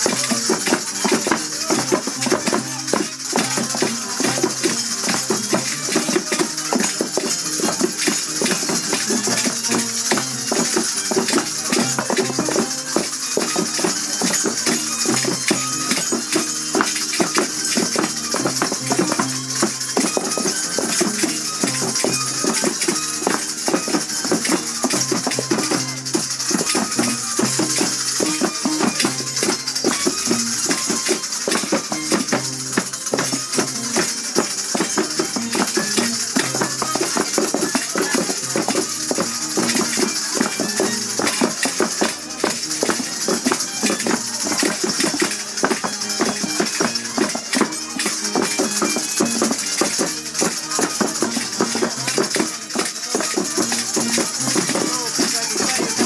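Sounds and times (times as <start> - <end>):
festival dance music: 0.0 - 56.0
rattles and bells jingling: 0.0 - 56.0.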